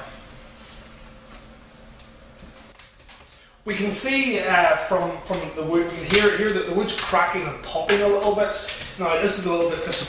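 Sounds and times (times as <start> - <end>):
fire crackling and popping: 1.1 - 10.0.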